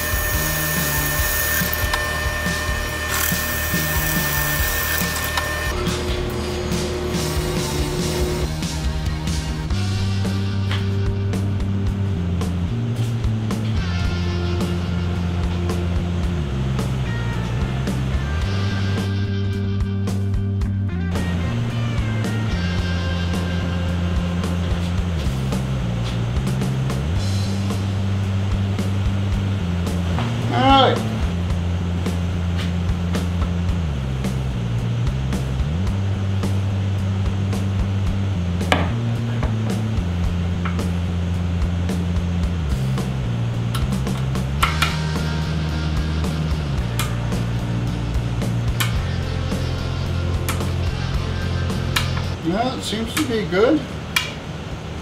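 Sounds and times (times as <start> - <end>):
music with repeating bass line: 0.0 - 52.6.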